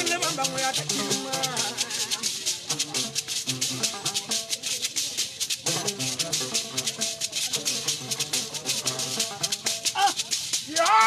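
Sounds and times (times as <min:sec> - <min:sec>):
gourd shakers rattling: 0:00.0 - 0:11.0
plucked lute: 0:00.0 - 0:11.0.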